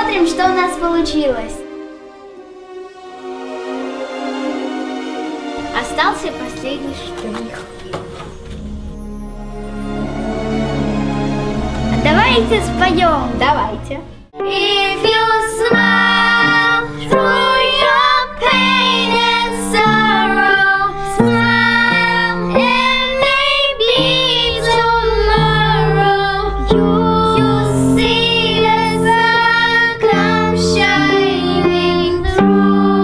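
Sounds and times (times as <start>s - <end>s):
piano chords: 0.0s - 33.0s
girls singing together: 14.4s - 33.0s.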